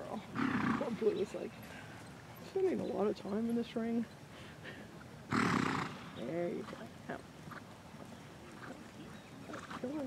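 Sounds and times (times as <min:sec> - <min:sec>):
horse snorting: 0:00.3 - 0:01.2, 0:05.3 - 0:06.9.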